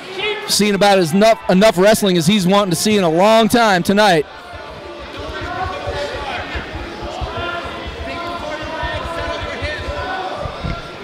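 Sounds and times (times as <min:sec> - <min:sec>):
spectators shouting: 0:00.0 - 0:11.0
low thuds: 0:04.3 - 0:11.0.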